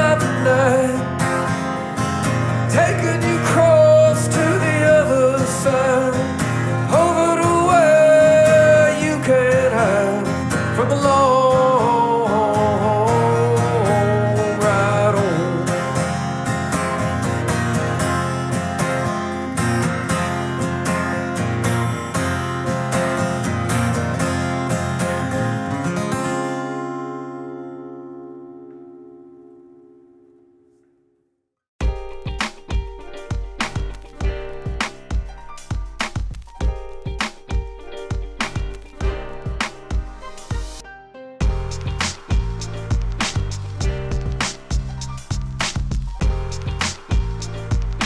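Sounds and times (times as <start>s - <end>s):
acoustic guitar strumming: 0.0s - 31.2s, 31.8s - 48.0s.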